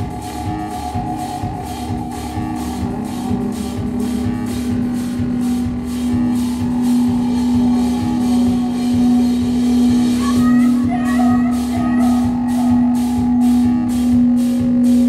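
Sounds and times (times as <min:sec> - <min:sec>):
drum beat: 0:00.0 - 0:15.0
electronic drone: 0:00.0 - 0:15.0.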